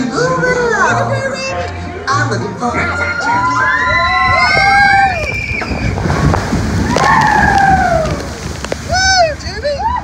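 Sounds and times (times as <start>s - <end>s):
wind: 0.0s - 10.0s
rushing water: 2.7s - 10.0s
people screaming: 2.8s - 6.1s, 6.8s - 8.4s
log splashing through water: 4.5s - 9.5s.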